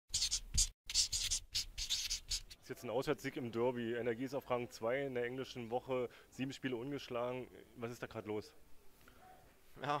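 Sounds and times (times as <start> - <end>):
marker pen scratching strokes: 0.1 - 2.6.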